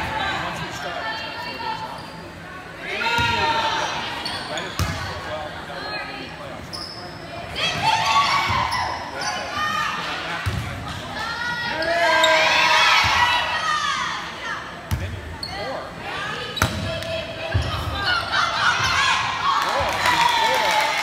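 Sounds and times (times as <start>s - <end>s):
people shouting in a gym: 0.0s - 4.2s, 7.5s - 10.4s, 11.0s - 14.9s, 15.5s - 21.0s.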